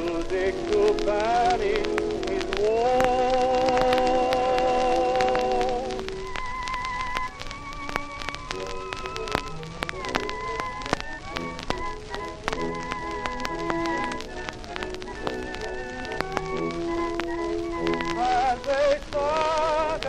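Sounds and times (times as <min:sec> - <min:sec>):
gramophone record music: 0:00.0 - 0:20.0
instrumental accompaniment: 0:00.0 - 0:20.0
record crackle and clicks: 0:00.0 - 0:20.0.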